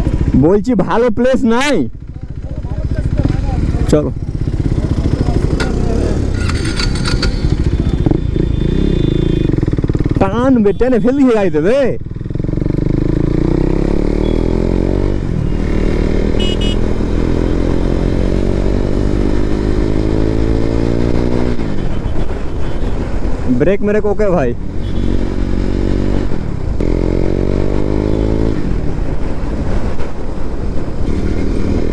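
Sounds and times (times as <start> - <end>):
motorcycle engine accelerating: 1.7 - 10.4, 12.0 - 21.8, 24.8 - 30.0, 30.6 - 31.9.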